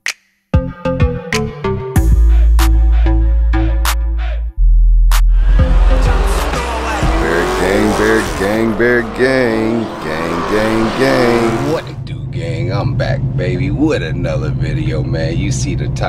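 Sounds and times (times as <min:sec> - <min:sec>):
music: 0:00.0 - 0:08.8
car engine revving hard: 0:05.4 - 0:12.0
tyre noise: 0:05.6 - 0:12.0.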